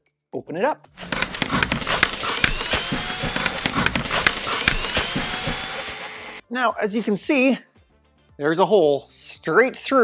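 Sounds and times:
cordless drill whine: 1.0 - 6.4
jigsaw cutting plastic: 1.0 - 6.4.

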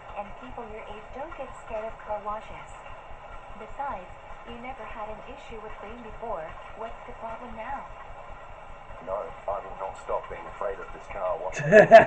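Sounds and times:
person talking: 9.0 - 12.0
man laughing loudly: 11.5 - 12.0.

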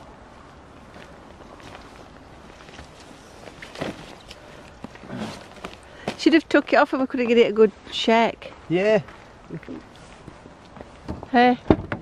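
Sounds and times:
fabric cover rustling: 1.0 - 6.2.

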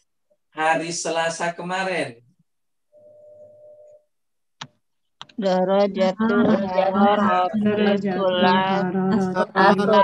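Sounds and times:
faint steady tone: 2.8 - 4.2.

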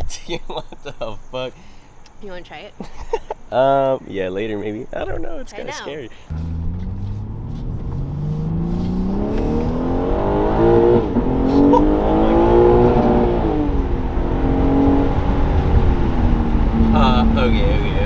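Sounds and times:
car engine accelerating: 5.9 - 18.0.

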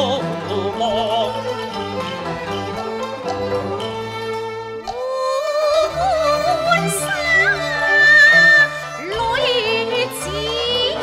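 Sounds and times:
bowed strings: 0.0 - 11.0.

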